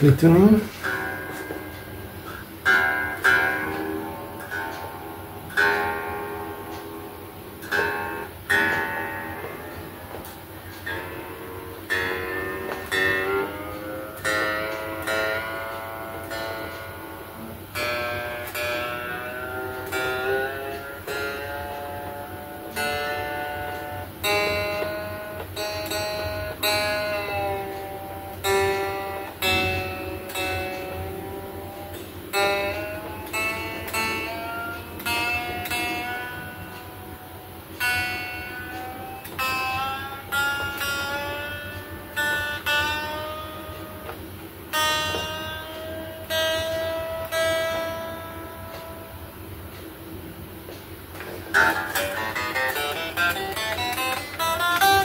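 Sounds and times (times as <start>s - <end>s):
electric guitar notes and chords: 0.0s - 55.0s.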